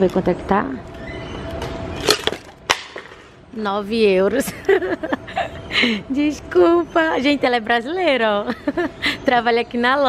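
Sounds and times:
faint background hum: 0:00.0 - 0:10.0.

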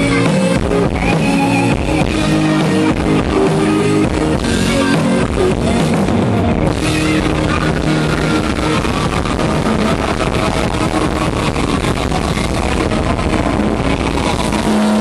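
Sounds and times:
live rock band playing loudly: 0:00.0 - 0:15.0.

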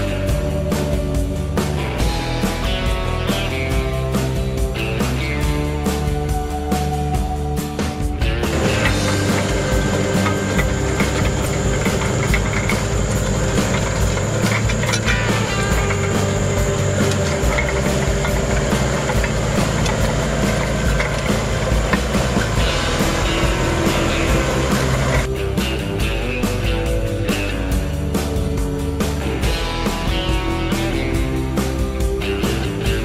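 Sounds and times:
rock guitar music: 0:00.0 - 0:33.0
tractor diesel engine running: 0:00.0 - 0:33.0.

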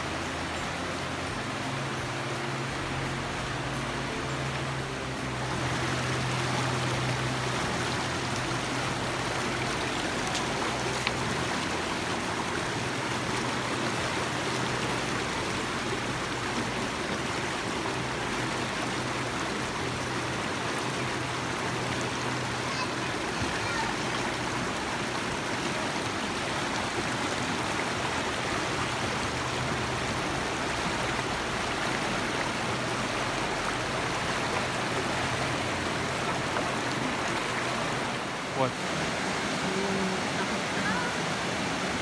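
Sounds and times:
river rushing over rocks: 0:00.0 - 0:42.0.

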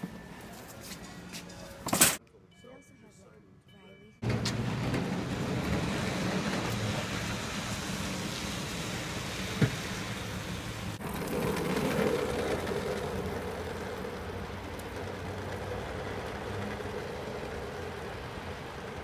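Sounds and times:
traffic: 0:00.0 - 0:19.0
wet pavement noise: 0:05.4 - 0:19.0.

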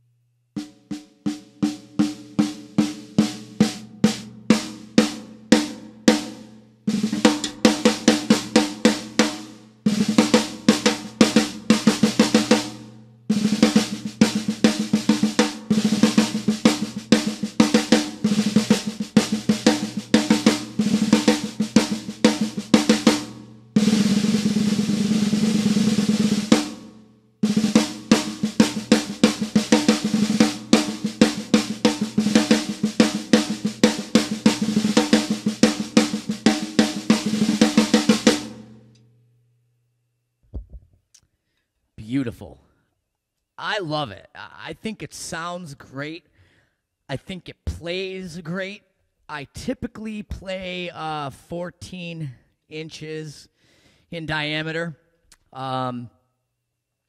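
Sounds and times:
snare drum strokes and rolls: 0:00.6 - 0:38.7.

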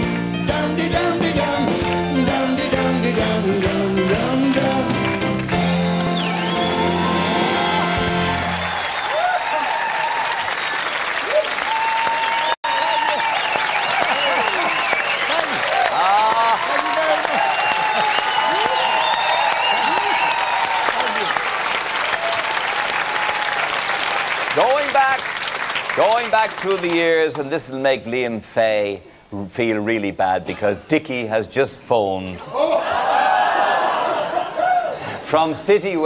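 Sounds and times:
audience applauding and cheering: 0:01.6 - 0:27.4.

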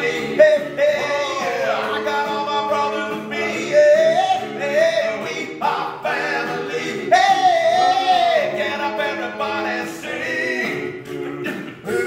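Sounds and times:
male a cappella group singing: 0:00.0 - 0:12.0.

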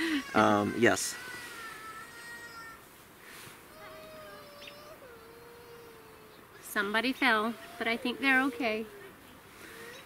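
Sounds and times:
distant child crying: 0:00.0 - 0:02.9, 0:03.7 - 0:06.6.

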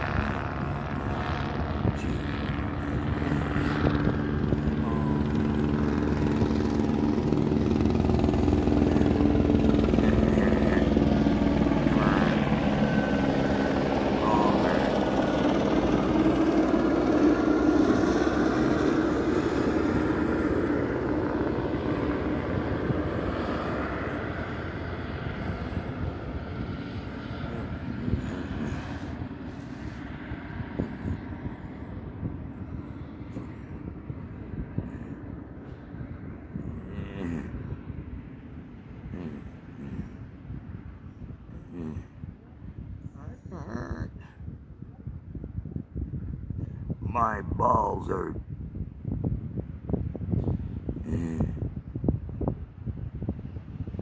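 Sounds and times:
helicopter flying over: 0:00.0 - 0:54.0.

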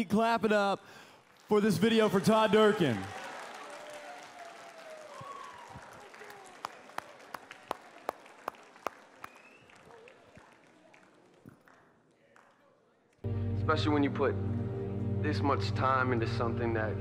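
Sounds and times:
audience applause: 0:01.2 - 0:12.7
sharp handclaps: 0:02.6 - 0:12.7.

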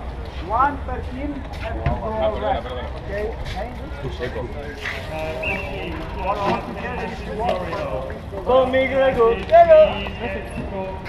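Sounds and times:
people talking: 0:00.4 - 0:11.0.

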